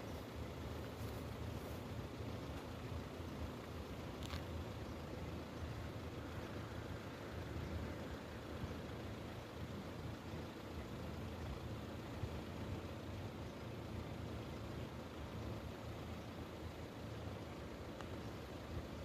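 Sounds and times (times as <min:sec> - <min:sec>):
vehicles idling: 0:00.0 - 0:19.0.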